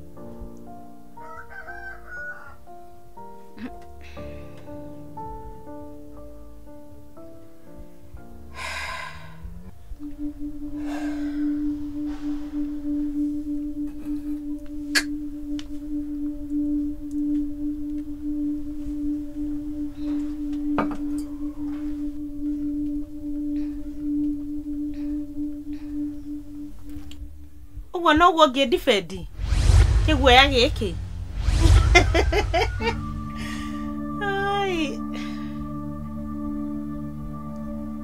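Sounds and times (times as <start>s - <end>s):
low held drone note: 3.2s - 27.9s, 29.2s - 38.0s.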